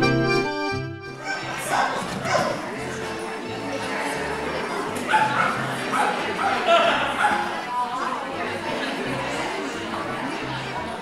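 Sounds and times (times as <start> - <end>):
dog barking: 1.2 - 2.6, 5.1 - 7.5.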